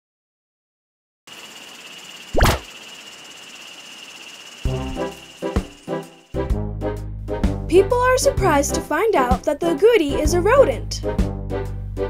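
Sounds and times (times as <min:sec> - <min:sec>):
faint high whine: 0:01.3 - 0:06.4.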